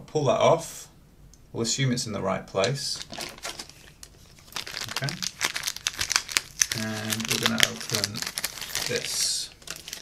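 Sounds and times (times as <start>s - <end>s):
plastic packet crinkling: 2.9s - 10.0s.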